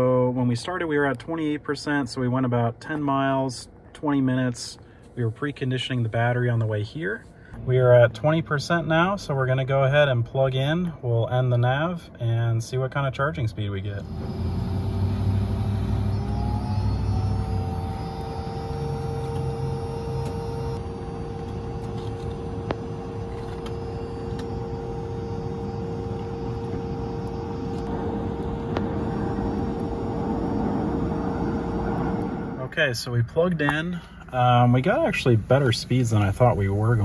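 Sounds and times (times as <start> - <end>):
charger electrical whine: 0.0 - 37.0
low steady rumble: 0.0 - 37.0.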